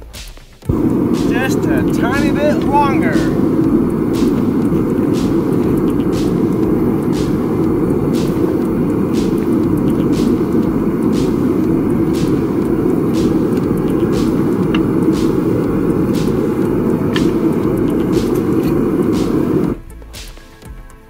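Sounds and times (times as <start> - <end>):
propane burner roaring: 0.0 - 19.9.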